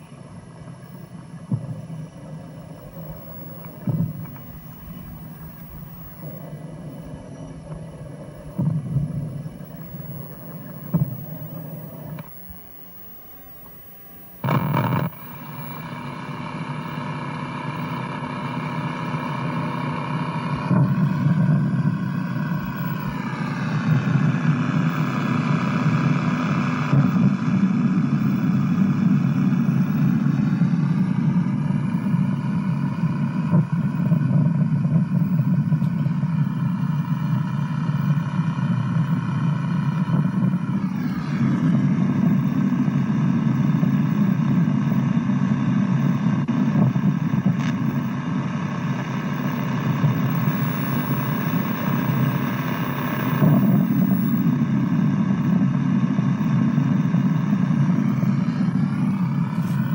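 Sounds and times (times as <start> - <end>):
steady low drone: 0.0 - 59.9.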